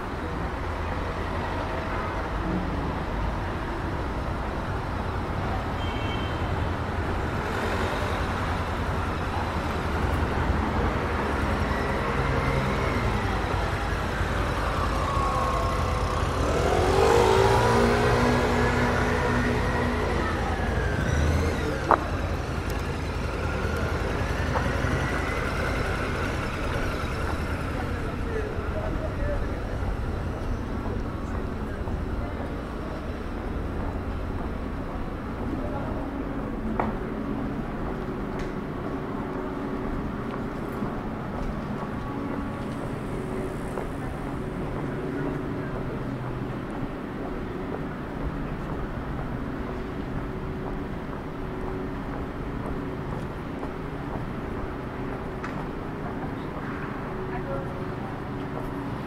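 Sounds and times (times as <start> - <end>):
city street traffic: 0.0 - 59.0
vehicle engine revving: 9.8 - 28.2
distant siren wail: 11.6 - 21.8.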